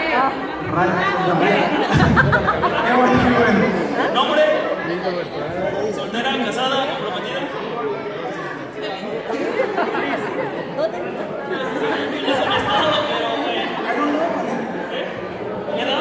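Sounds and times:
overlapping chatter of young people: 0.0s - 16.0s.

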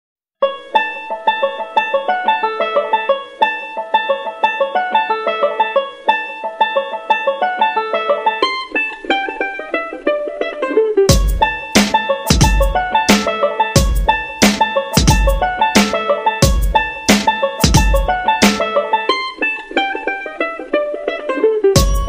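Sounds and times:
plucked string melody: 0.4s - 22.0s
heavy drum hits: 11.1s - 18.6s, 21.8s - 22.0s.

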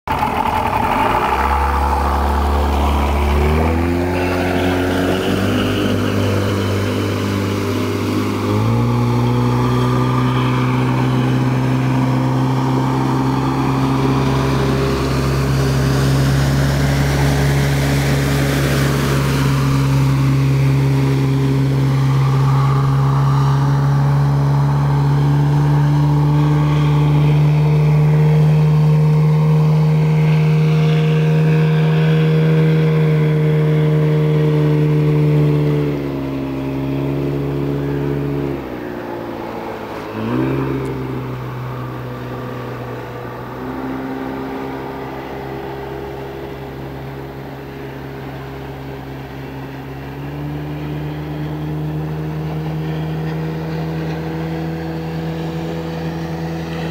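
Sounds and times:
outboard boat motor droning: 0.1s - 56.9s.

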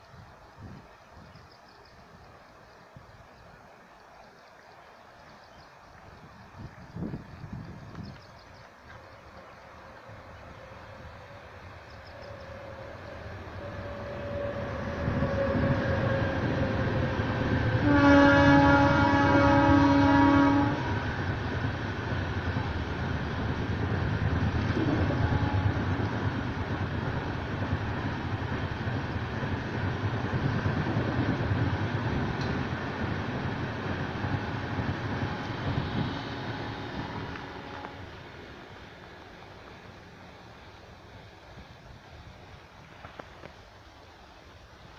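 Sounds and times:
train rumbling past: 0.0s - 44.9s
train horn: 8.8s - 21.5s, 24.4s - 26.4s, 34.0s - 38.5s.

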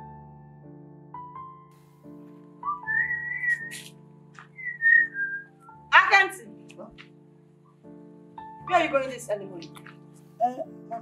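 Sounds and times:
whistled melody: 2.6s - 5.9s.

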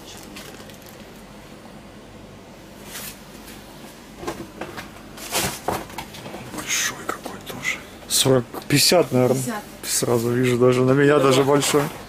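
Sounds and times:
person whispering: 6.5s - 8.0s.

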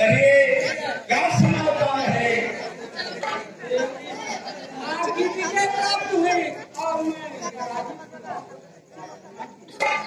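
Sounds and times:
man talking: 0.0s - 2.7s
background chatter: 0.0s - 10.0s.

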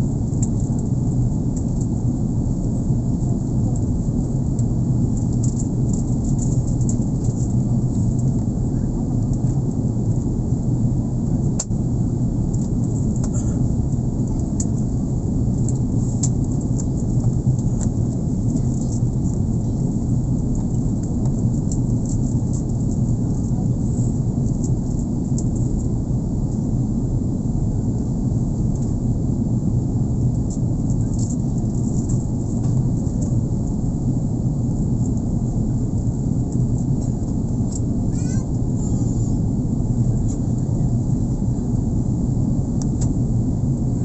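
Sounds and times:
jet engine rumble in cabin: 0.0s - 44.0s.

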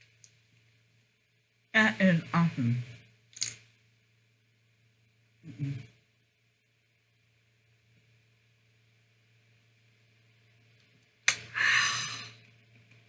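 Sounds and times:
person exhaling loudly: 11.5s - 12.4s.

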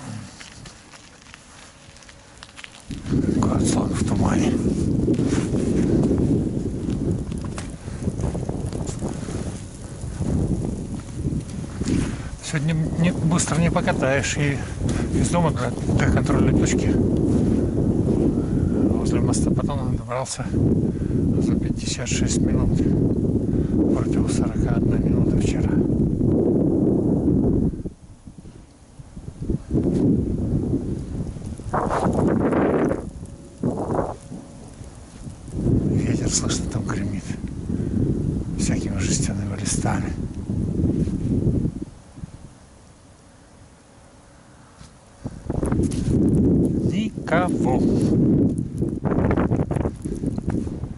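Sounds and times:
wind buffeting microphone: 0.0s - 43.8s, 44.6s - 50.9s.

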